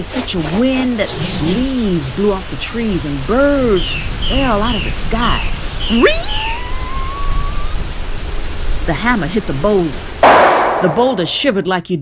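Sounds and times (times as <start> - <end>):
vocal rising whistling tone: 5.8 - 7.8.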